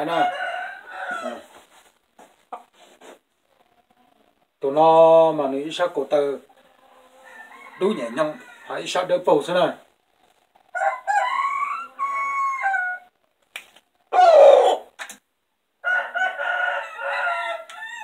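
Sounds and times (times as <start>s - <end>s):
rooster crowing: 0.0s - 1.5s, 7.2s - 9.0s, 10.7s - 13.1s, 15.8s - 18.0s.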